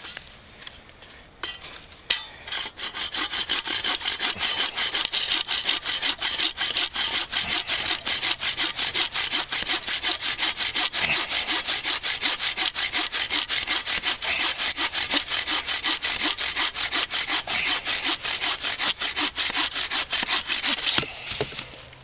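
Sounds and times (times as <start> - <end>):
hand saw cutting wood: 2.5 - 21.7.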